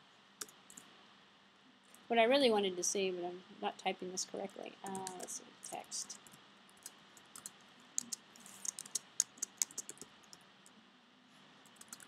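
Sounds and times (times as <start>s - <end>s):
computer keyboard typing: 4.9s - 10.4s, 11.7s - 12.0s.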